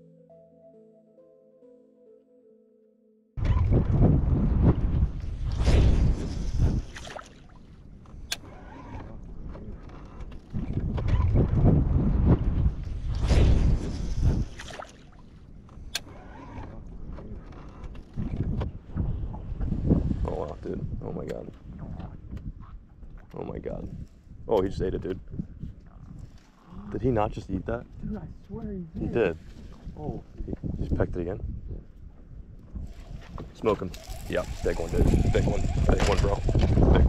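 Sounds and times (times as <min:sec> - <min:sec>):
wind buffeting microphone: 0:03.4 - 0:07.0, 0:10.5 - 0:14.6, 0:18.1 - 0:37.0.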